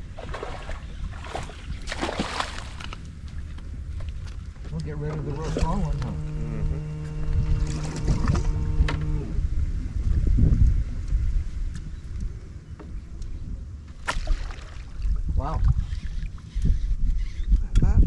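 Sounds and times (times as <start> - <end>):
steady low hum: 0.0 - 18.0
water around boat hull: 0.0 - 18.0
wind on microphone: 0.0 - 18.0.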